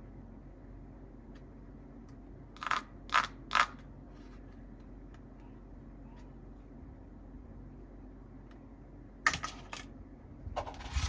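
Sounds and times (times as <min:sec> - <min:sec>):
plastic toy pieces clicking: 0:02.6 - 0:03.8.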